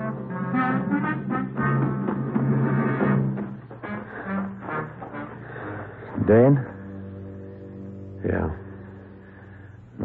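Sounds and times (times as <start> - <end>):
music with held notes: 0.0 - 10.0.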